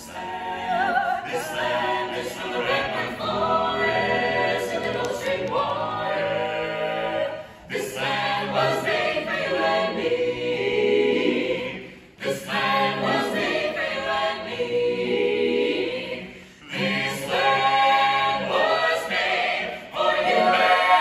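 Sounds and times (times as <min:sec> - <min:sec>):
a cappella ensemble singing: 0:00.0 - 0:21.0
singers breathing: 0:07.3 - 0:07.7, 0:16.2 - 0:16.7.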